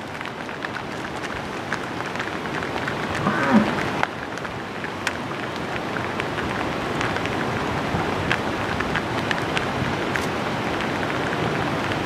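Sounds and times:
crackly background noise: 0.0 - 12.0
hooves clicking on asphalt: 0.0 - 12.0
low voice-like sound: 3.2 - 3.8.

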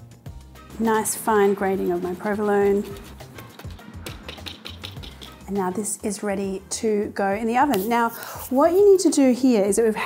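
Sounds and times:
background music: 0.0 - 10.0
cheese being grated: 0.8 - 4.8.

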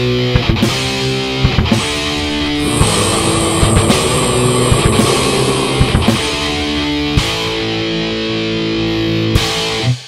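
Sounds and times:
distorted electric guitar: 1.8 - 8.4.

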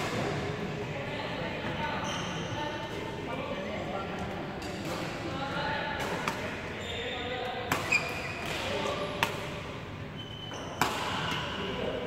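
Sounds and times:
short high squeak: 10.2 - 10.8
racket hitting shuttlecock: 10.8 - 11.5.

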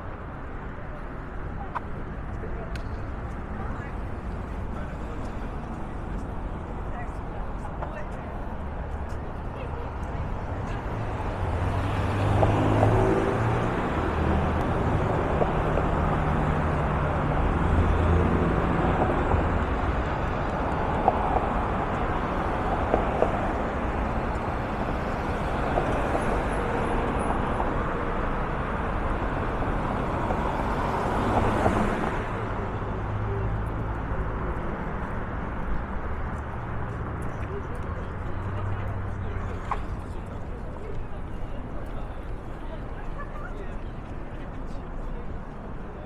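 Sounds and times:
cars driving past: 1.6 - 46.0.

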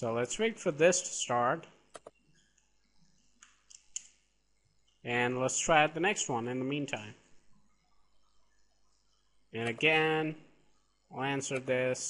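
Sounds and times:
keyboard and mouse clicks: 1.9 - 2.7, 3.4 - 4.2.

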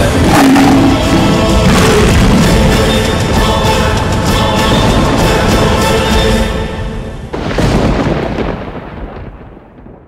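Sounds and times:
deep rumbling boom: 0.0 - 3.6, 7.3 - 10.0.

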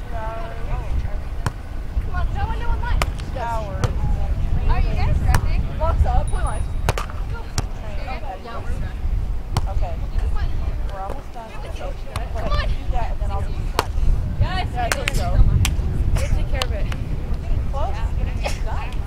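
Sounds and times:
wind rumble on microphone: 0.0 - 19.0
volleyball slapping off hands: 6.9 - 7.7.

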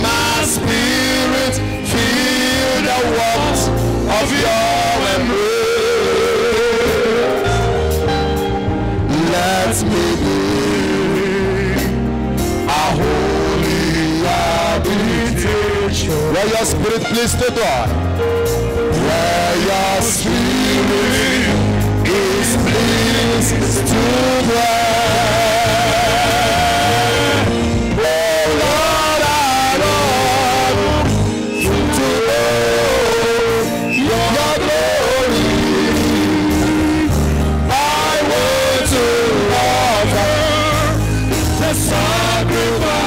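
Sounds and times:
instrumental accompaniment: 0.0 - 43.0
man singing worship music: 0.0 - 43.0.

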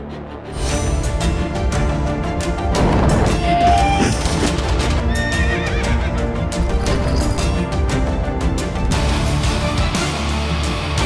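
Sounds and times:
music soundtrack: 0.0 - 11.0
horse whinnying: 3.4 - 6.2.

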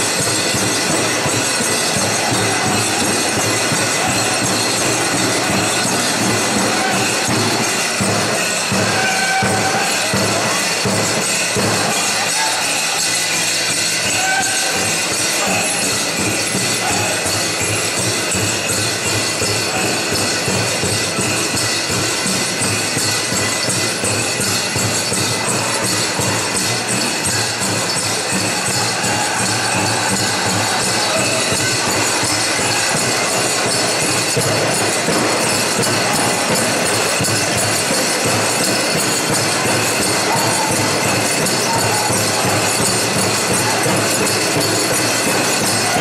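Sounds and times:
drum group drumming and singing: 0.0 - 46.0
metal jingles ringing: 0.0 - 46.0.

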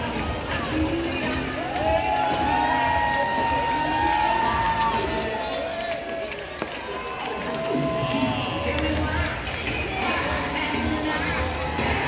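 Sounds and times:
crowd chatter and cheering: 0.0 - 12.0
music over stadium speakers: 0.0 - 12.0.

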